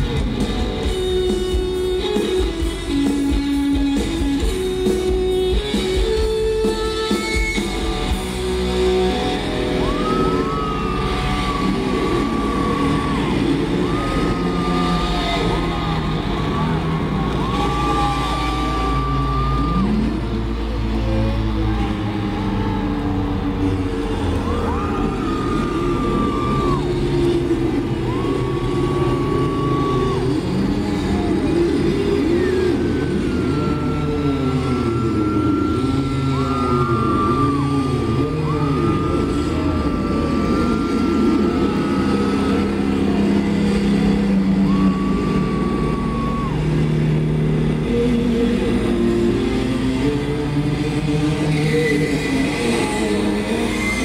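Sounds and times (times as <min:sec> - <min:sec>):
distorted electric guitars: 0:00.0 - 0:54.0
guitar feedback squealing: 0:00.0 - 0:54.0.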